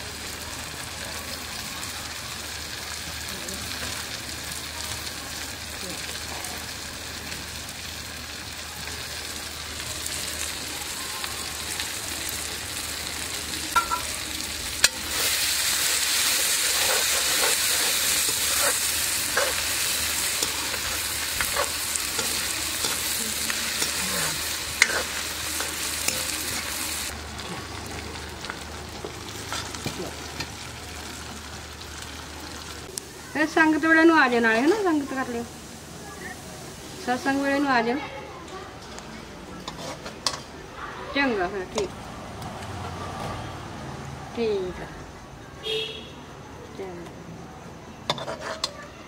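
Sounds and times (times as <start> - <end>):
onions sizzling in oil: 0.0 - 43.1, 48.0 - 49.0
spatula scraping a metal pan: 15.0 - 26.3, 39.6 - 40.4, 48.1 - 48.8.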